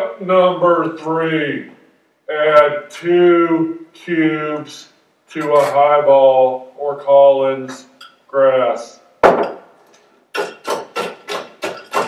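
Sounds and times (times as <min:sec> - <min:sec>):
ice being crushed in a glass: 0:10.4 - 0:12.0.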